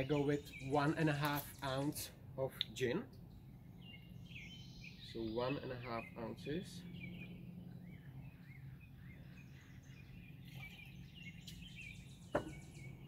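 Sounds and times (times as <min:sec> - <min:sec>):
steady low hum: 0:00.0 - 0:13.0
faint bird chirps: 0:03.3 - 0:13.0.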